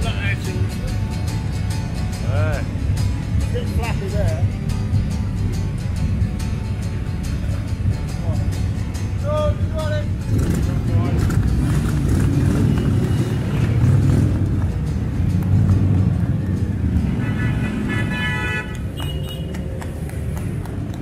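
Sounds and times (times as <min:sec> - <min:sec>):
motorcycle engines rumbling: 0:00.0 - 0:21.0
vehicle horn: 0:17.0 - 0:19.5.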